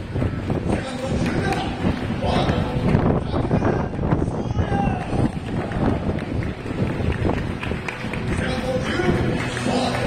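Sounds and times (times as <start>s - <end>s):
steady low rumble: 0.0s - 9.7s
public address voice echoing: 0.6s - 6.1s, 8.3s - 10.0s.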